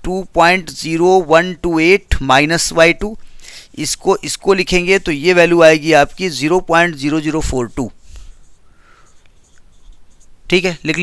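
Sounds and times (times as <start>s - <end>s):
marker pen scratching on whiteboard: 3.8s - 11.0s.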